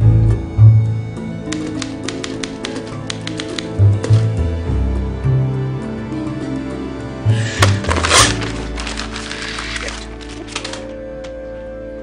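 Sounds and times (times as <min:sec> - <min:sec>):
film score music low notes: 0:00.0 - 0:12.0
typewriter keys clacking: 0:01.6 - 0:03.8.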